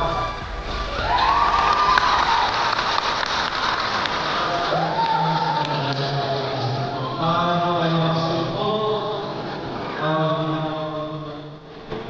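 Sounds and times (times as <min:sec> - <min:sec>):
crowd applauding: 0:00.0 - 0:07.4
high drawn-out cheer: 0:00.0 - 0:08.7.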